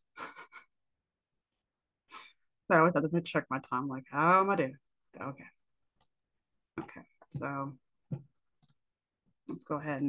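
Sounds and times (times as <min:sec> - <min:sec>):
woman's breathy laugh: 0:00.1 - 0:00.7.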